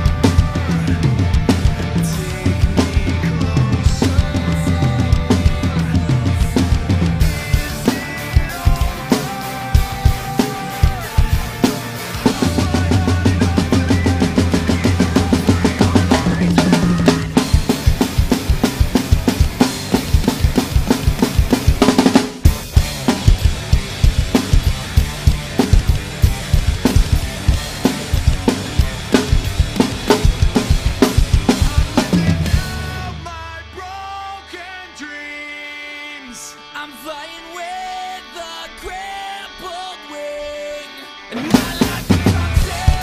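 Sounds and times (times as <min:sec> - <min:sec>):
drum kit played hard: 0:00.0 - 0:34.6, 0:41.4 - 0:43.0.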